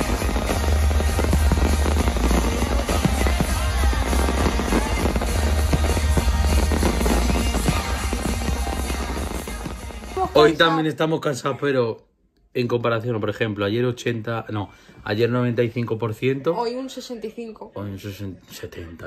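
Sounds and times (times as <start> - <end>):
music from speakers: 0.0 - 10.6
fireworks bangs and crackles: 0.0 - 10.7.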